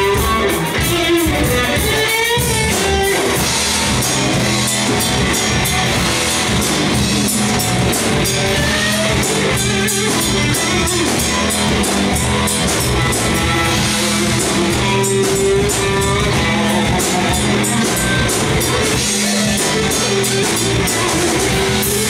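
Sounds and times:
bass guitar: 0:00.0 - 0:22.0
drum kit: 0:00.0 - 0:22.0
electric guitar bending notes: 0:00.0 - 0:22.0.

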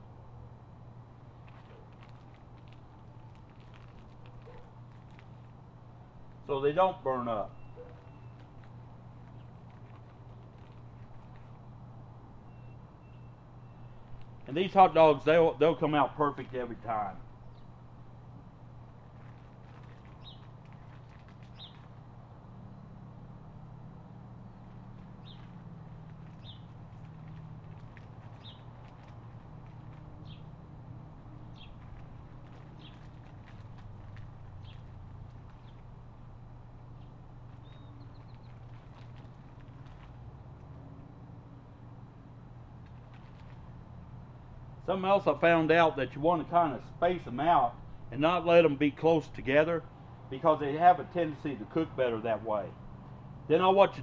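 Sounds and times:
low steady hum: 0:00.0 - 0:54.0
bird chirping: 0:07.5 - 0:08.6, 0:12.4 - 0:14.2, 0:21.5 - 0:21.9, 0:25.2 - 0:25.5, 0:26.3 - 0:26.7, 0:28.4 - 0:28.7, 0:37.0 - 0:39.0.

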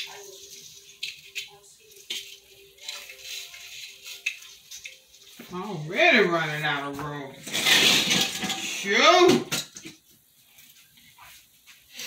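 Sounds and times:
plastic ornaments rustling: 0:00.0 - 0:09.0.

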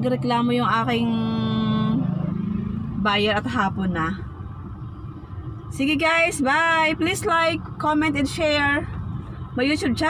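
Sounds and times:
car interior hum: 0:00.0 - 0:10.0.

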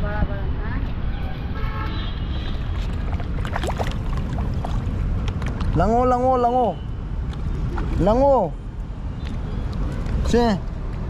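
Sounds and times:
short splashes: 0:02.4 - 0:05.1
water rumbling: 0:02.5 - 0:05.9.

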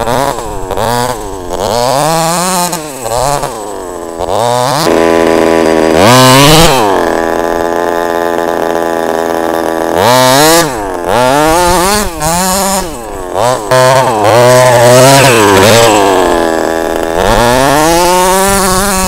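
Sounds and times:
two-stroke engine revving: 0:00.0 - 0:19.0.

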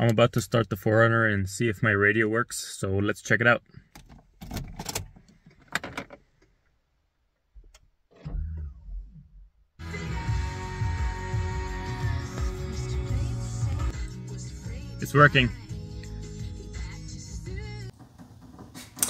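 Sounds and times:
car radio playing music: 0:09.8 - 0:17.9.

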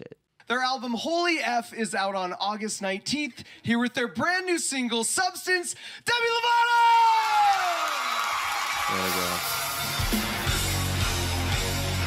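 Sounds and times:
audience cheering and applauding: 0:06.4 - 0:12.0
band playing: 0:08.9 - 0:12.0.

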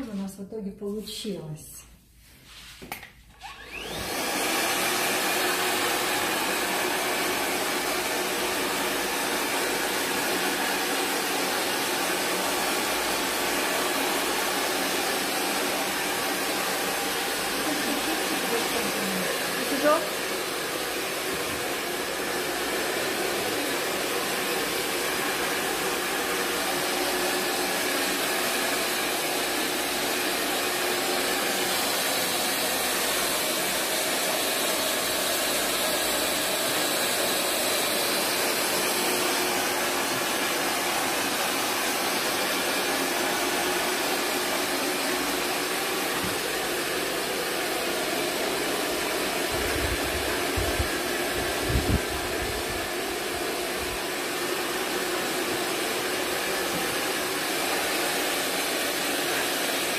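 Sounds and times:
hair dryer running: 0:02.5 - 0:59.9.

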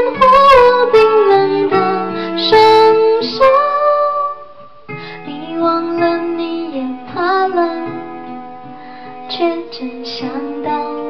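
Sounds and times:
woman singing slow song: 0:00.0 - 0:04.6, 0:05.2 - 0:08.4, 0:09.2 - 0:11.0
fingerpicked acoustic guitar: 0:00.0 - 0:11.0.

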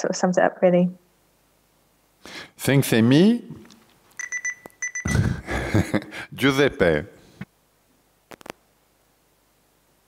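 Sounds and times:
high electronic beeps: 0:04.2 - 0:05.2.

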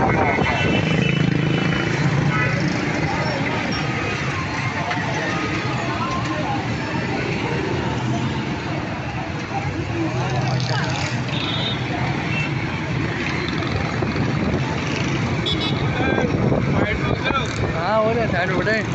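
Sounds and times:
motorcycle and car engines: 0:00.0 - 0:18.9
people's voices: 0:00.0 - 0:18.9.

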